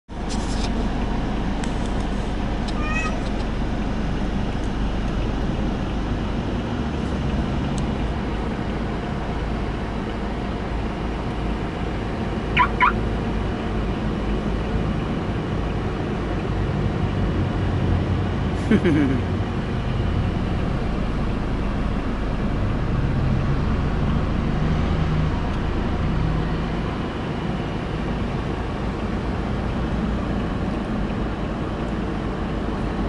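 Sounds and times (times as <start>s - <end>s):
car cabin rumble: 12.6s - 13.0s
high-pitched chirps: 12.6s - 13.0s.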